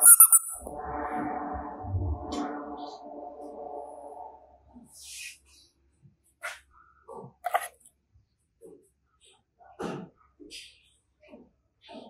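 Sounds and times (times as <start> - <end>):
rubber squeeze toy squeaking: 0.0 - 0.6
wavering pitched sound: 0.0 - 4.7.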